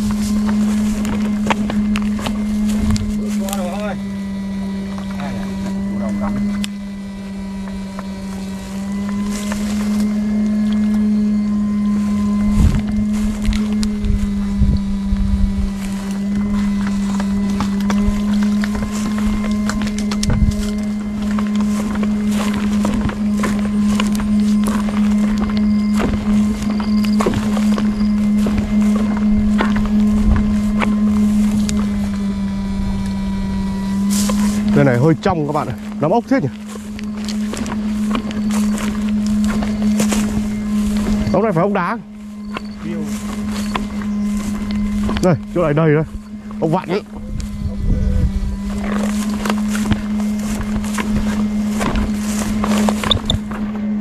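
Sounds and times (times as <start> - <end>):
inverter humming low: 0.0 - 54.0.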